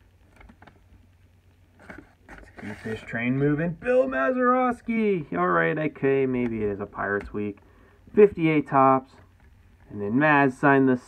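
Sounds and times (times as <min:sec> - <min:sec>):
low steady hum: 0:00.0 - 0:11.0
paper and cards rustling: 0:01.7 - 0:03.7.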